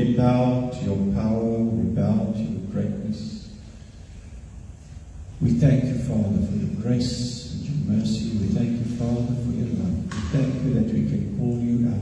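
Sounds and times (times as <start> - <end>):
man praying over loudspeaker: 0.0 - 3.6, 5.4 - 12.0.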